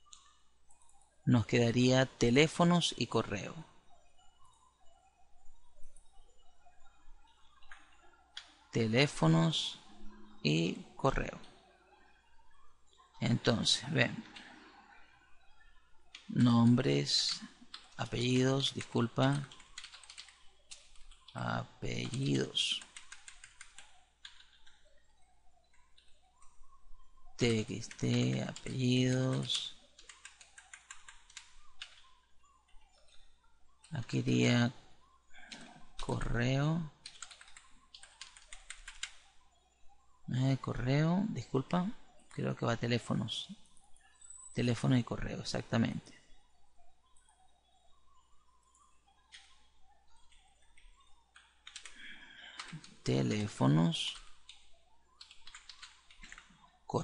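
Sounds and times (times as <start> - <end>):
keyboard typing: 0.0 - 11.6, 12.2 - 46.2, 47.0 - 57.0
computer keyboard keystrokes: 16.1 - 21.4, 22.0 - 24.8, 27.5 - 32.1, 37.0 - 39.2, 50.2 - 53.5, 55.2 - 56.6.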